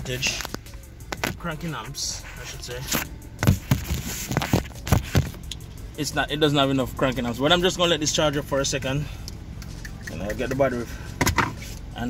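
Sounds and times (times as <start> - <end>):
car engine idling: 0.0 - 12.0
phone camera handling thumps: 3.4 - 5.4.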